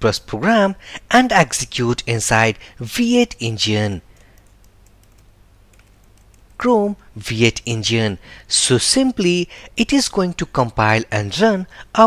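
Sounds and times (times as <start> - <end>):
computer keyboard typing: 4.1 - 6.6.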